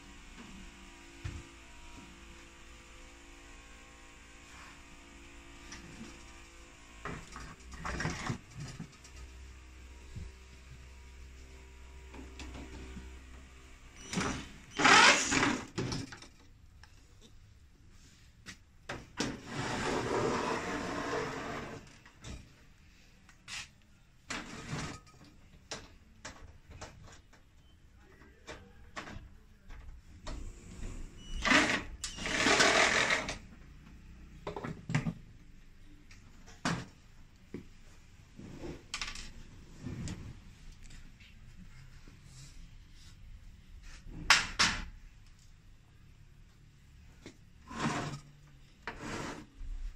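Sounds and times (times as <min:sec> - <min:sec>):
cordless drill running: 0:14.0 - 0:15.6, 0:31.4 - 0:33.3.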